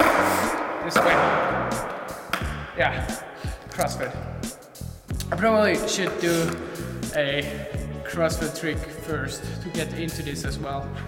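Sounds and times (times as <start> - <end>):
skateboard hitting concrete floor: 0.0 - 2.6, 5.8 - 6.6
background music with bass line: 0.0 - 11.0.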